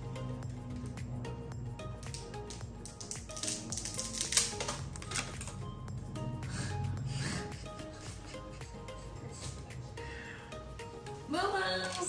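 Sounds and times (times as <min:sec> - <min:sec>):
background music: 0:00.0 - 0:12.0
dried rice sticks snapping: 0:02.0 - 0:05.6.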